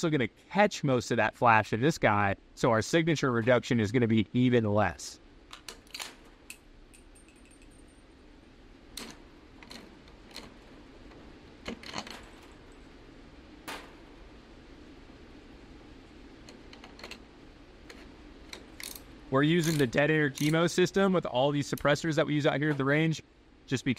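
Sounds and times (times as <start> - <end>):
faint steady hum: 0.0 - 23.9.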